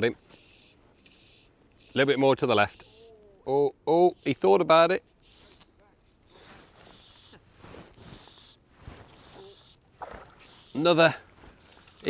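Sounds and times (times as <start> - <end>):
quiet water: 5.0 - 12.0
soft rustles: 5.4 - 10.4, 11.2 - 12.0
fish splashing: 9.0 - 10.7.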